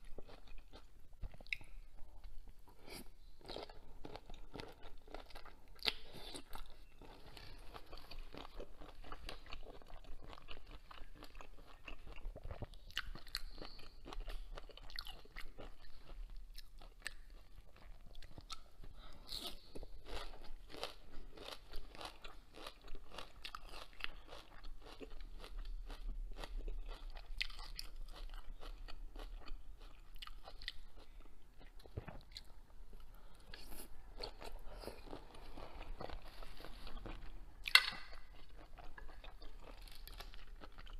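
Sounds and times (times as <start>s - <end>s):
chewing crunchy shrimp shells: 2.7s - 32.6s, 33.2s - 40.9s.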